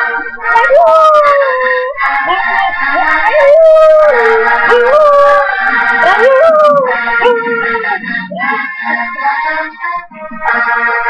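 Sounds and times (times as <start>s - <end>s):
song playing: 0.0s - 11.0s
husky howling: 0.4s - 8.7s.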